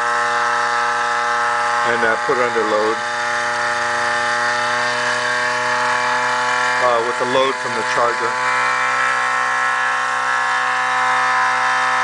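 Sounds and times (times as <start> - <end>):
pulse motor humming: 0.0 - 12.0.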